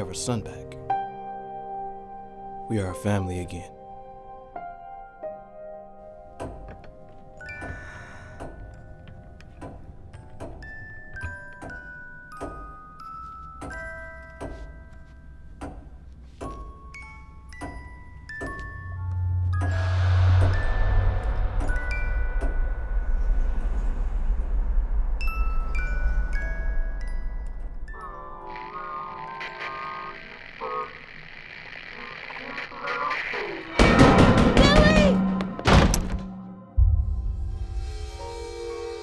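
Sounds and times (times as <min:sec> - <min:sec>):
deep boom: 0:33.8 - 0:38.4.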